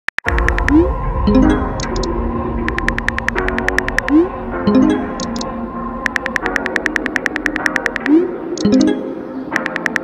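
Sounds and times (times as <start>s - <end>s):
quiet background music: 0.3s - 10.0s
phone keyboard clicks: 6.1s - 8.8s, 9.6s - 10.0s.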